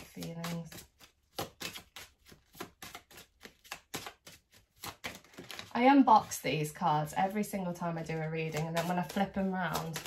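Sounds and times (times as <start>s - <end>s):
cards being shuffled by hand: 0.0s - 6.8s, 7.9s - 10.0s.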